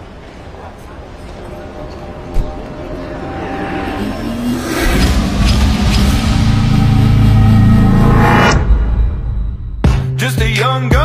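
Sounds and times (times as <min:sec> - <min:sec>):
background music build-up: 0:01.0 - 0:10.5.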